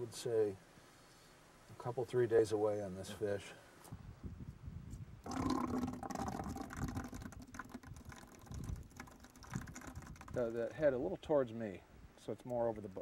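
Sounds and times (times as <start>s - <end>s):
eggs and fluid splashing into bucket: 5.3s - 10.8s.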